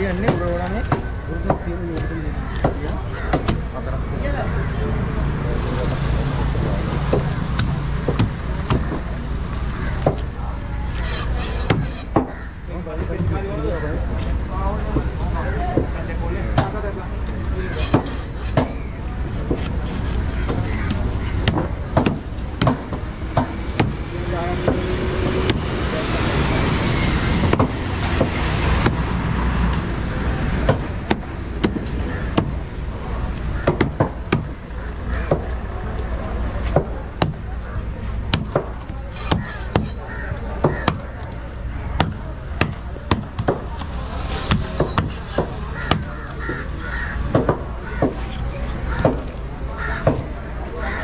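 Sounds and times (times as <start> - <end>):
crows cawing: 2.0 - 3.6, 9.7 - 10.2, 11.0 - 12.7, 20.2 - 21.8, 31.7 - 32.6, 39.3 - 41.2, 45.7 - 51.0
knife chopping fish on wooden block: 38.3 - 40.0.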